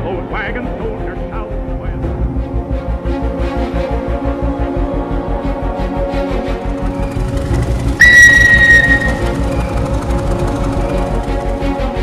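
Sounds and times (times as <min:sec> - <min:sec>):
high whistle note: 0:08.0 - 0:09.8.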